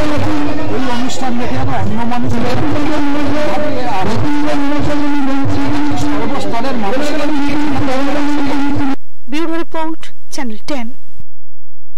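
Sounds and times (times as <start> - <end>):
distorted music over loudspeakers: 0.0 - 9.0.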